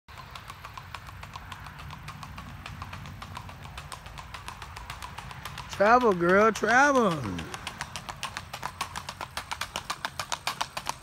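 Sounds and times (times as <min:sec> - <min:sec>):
hooves clip-clopping on pavement: 0:00.1 - 0:11.0.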